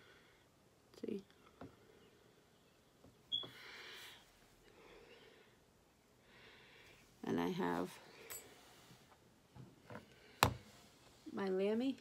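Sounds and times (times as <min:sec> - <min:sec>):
soft breath hiss: 0:00.0 - 0:12.0.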